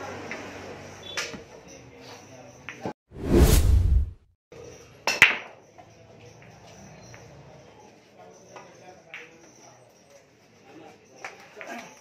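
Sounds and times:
whoosh with deep rumble: 3.2s - 4.2s.

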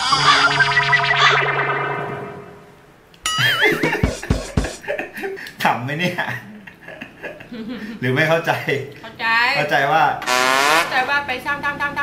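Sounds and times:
distorted echoing music sting: 0.0s - 2.9s.

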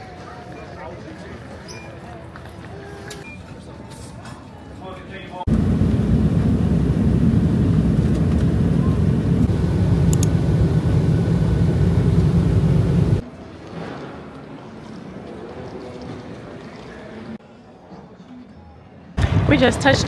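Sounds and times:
airliner cabin engine roar: 5.5s - 13.2s.

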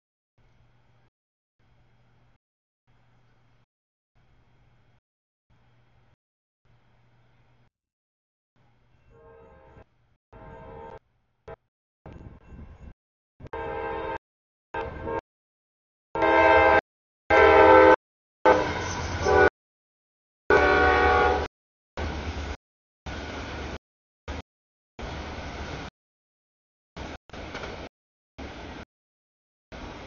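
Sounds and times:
locomotive air horn blast: 9.1s - 11.0s, 13.4s - 14.2s, 14.8s - 15.2s, 16.2s - 19.5s, 20.5s - 21.5s
freight train rumbling: 20.5s - 24.4s, 25.0s - 25.9s, 27.0s - 28.8s, 29.8s - 30.0s.

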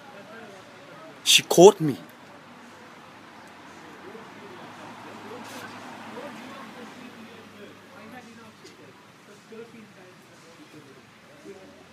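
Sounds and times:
distant indistinct voices: 0.0s - 11.9s.

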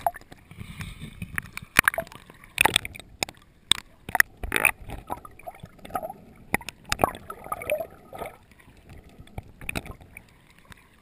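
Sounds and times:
water sloshing and gurgling: 0.0s - 11.0s
sharp splashes and knocks: 1.3s - 10.8s.

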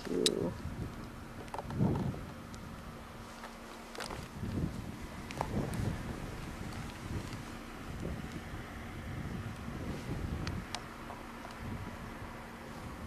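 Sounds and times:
wind rumbling on microphone: 0.0s - 13.0s.

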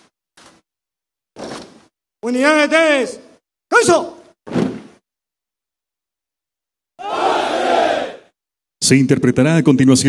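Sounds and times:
soldiers shouting in unison: 7.0s - 8.3s.

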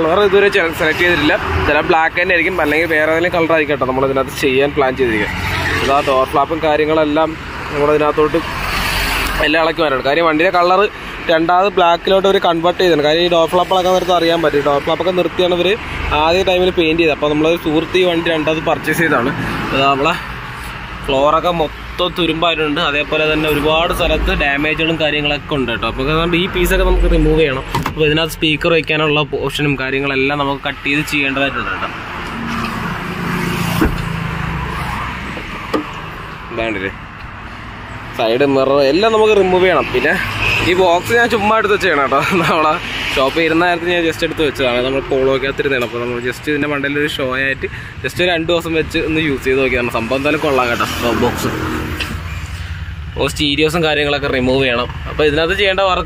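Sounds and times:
road traffic rumble: 0.0s - 56.0s
vehicle engine passing: 30.5s - 45.5s, 49.0s - 56.0s.

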